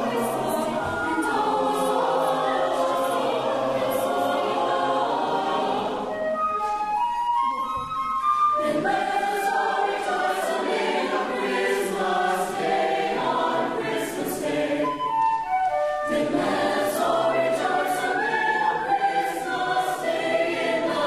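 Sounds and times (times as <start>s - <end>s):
mixed choir singing: 0.0s - 6.4s, 8.6s - 15.2s, 16.0s - 21.0s
flute playing: 0.0s - 11.5s, 13.4s - 21.0s.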